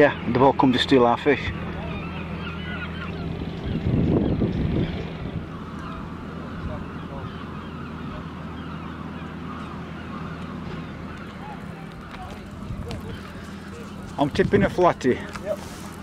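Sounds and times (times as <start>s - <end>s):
birds calling: 0.0s - 16.0s
low engine hum: 0.0s - 16.0s.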